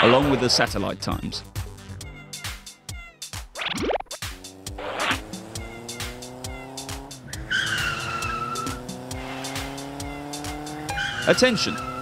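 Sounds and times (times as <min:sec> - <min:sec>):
background music with steady beat: 0:00.4 - 0:12.0
video game car engine accelerating: 0:03.6 - 0:12.0
tire squeal: 0:04.8 - 0:06.1, 0:07.2 - 0:09.8, 0:10.7 - 0:12.0.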